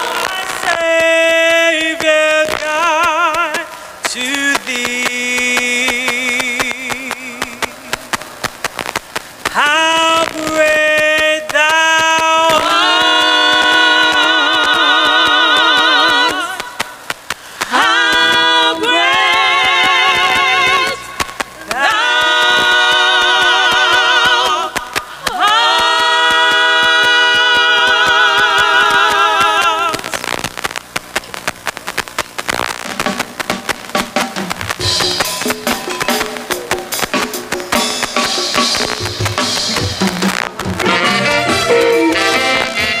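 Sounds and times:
singers breathing: 3.7s - 4.1s, 17.3s - 17.7s
choir singing a cappella: 12.3s - 16.8s, 17.7s - 21.0s, 21.6s - 29.9s.

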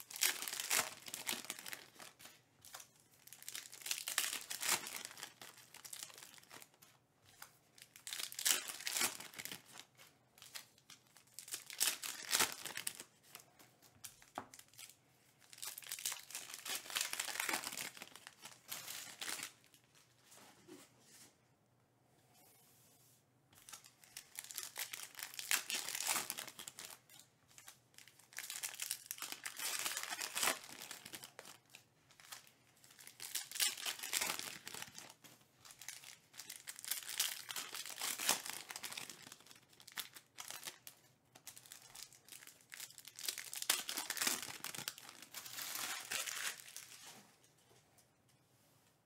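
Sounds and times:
foil wrappers tearing and crinkling: 0.0s - 6.7s, 7.8s - 9.8s, 14.3s - 19.5s, 23.6s - 40.9s, 41.5s - 47.0s.

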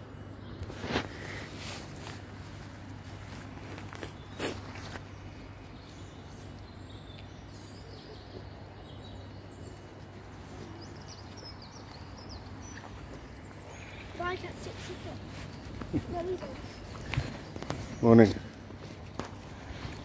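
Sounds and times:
faint bird calls: 3.3s - 18.6s.

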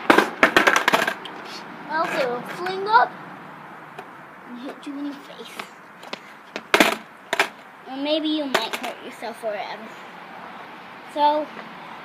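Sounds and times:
skateboard clattering on concrete: 0.0s - 1.4s, 5.4s - 7.6s, 8.4s - 9.0s.

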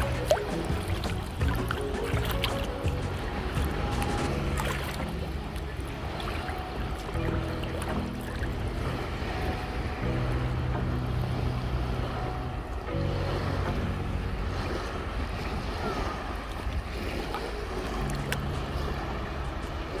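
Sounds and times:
shallow sea water lapping: 0.0s - 20.0s
slow relaxing music chords: 0.0s - 20.0s.

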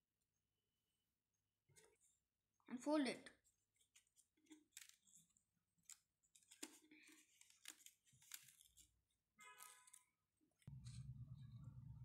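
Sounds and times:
paper rustling and folding: 1.7s - 2.3s, 3.4s - 10.7s.

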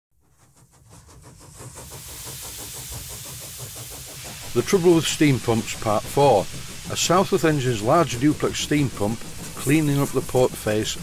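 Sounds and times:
steam engine exhaust beats: 0.2s - 11.0s
steam hiss: 0.2s - 11.0s.

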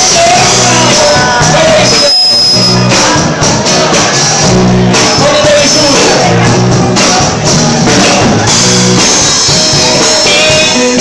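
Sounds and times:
drum kit: 0.0s - 11.0s
live rock band: 0.0s - 11.0s.

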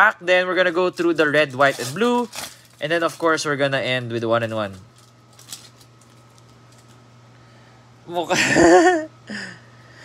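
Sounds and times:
wrapper crinkling and tearing: 0.0s - 3.6s, 4.3s - 7.0s.

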